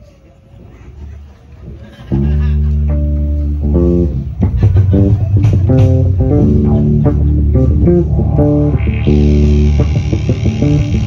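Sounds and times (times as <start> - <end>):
live band through pa: 1.2 - 11.0
electric bass guitar: 2.1 - 11.0.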